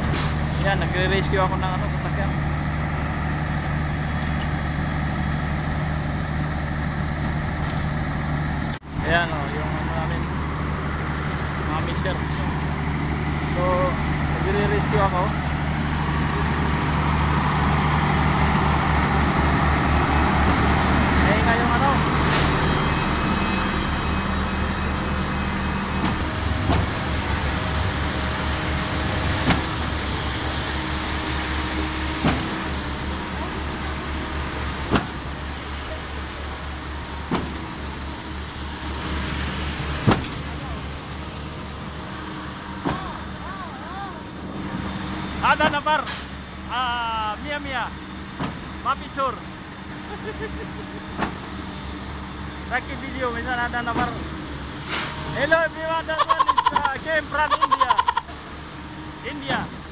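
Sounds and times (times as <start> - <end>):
diesel engines throbbing: 0.0 - 59.9.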